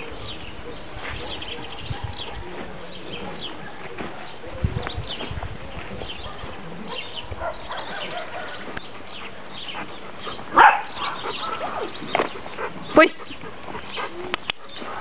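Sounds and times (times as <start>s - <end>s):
dog barking: 6.2s - 8.6s, 10.5s - 11.9s, 14.8s - 15.0s.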